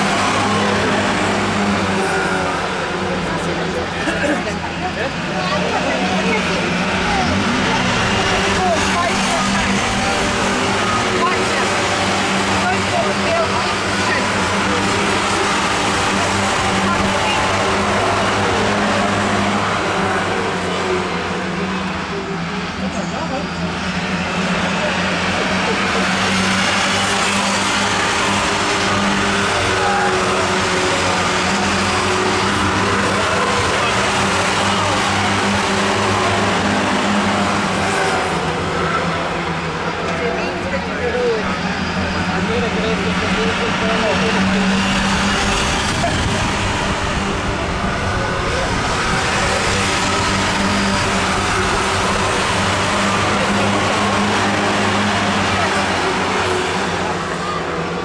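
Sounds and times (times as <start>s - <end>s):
race car engines droning: 0.0s - 58.0s.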